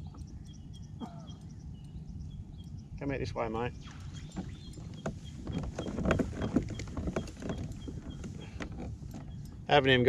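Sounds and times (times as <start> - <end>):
knocks and clicks of rod and kayak: 4.1 - 9.6.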